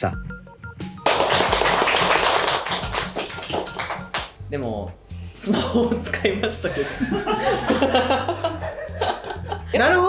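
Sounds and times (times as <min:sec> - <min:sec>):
background music: 0:00.0 - 0:10.0
hand clapping: 0:01.0 - 0:04.4.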